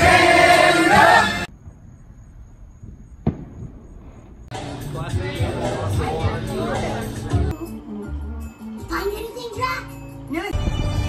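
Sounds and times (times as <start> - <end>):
group of people singing: 0.0 - 1.5
music: 0.0 - 1.5, 4.5 - 11.0.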